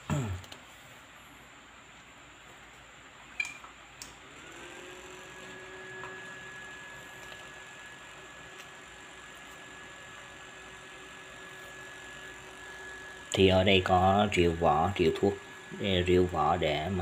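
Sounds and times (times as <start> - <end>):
motor humming with rising whine: 4.1 - 17.0.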